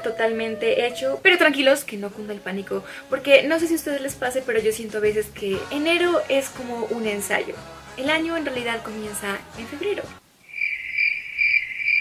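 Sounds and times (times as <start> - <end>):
crickets chirping: 10.4 - 12.0.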